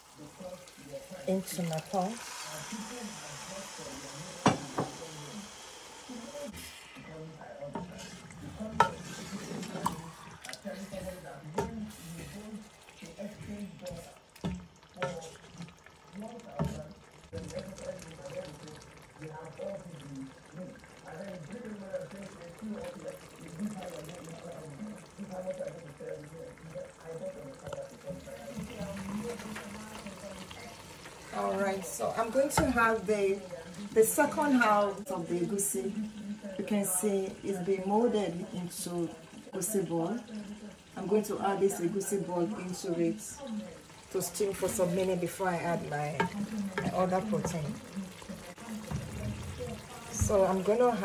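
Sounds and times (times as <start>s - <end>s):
liquid sloshing in pot: 6.4s - 36.6s, 41.8s - 51.0s.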